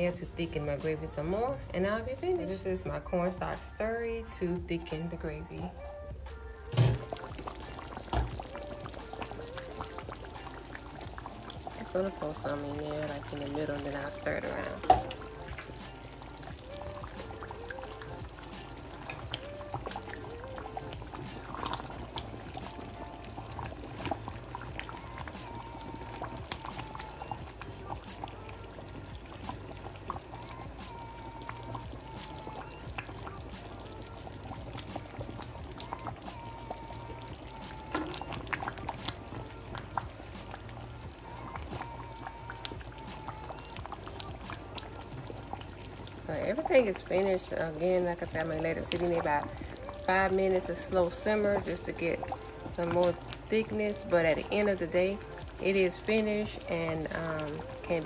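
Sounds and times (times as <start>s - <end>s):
gravy bubbling and sloshing: 0.0s - 58.0s.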